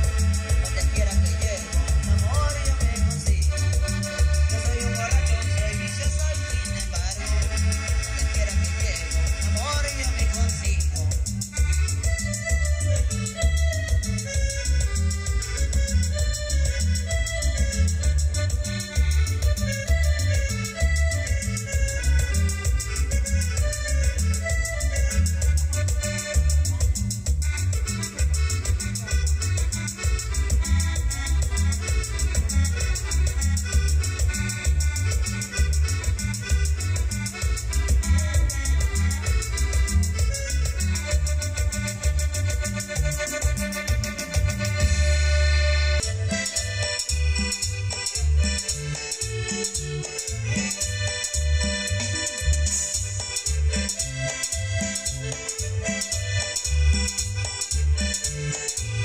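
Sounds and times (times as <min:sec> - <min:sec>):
dance music on electronic keyboard: 0:00.0 - 0:59.0.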